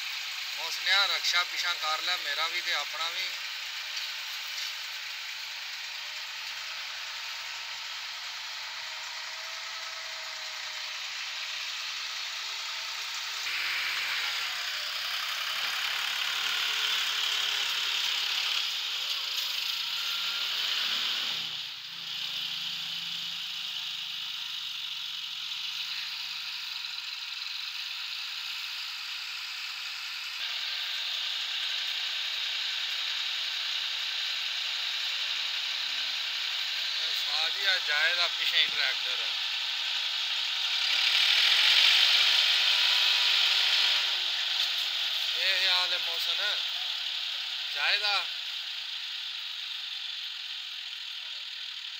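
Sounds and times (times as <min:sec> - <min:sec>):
tractor and rickshaw engines: 0:00.0 - 0:51.9.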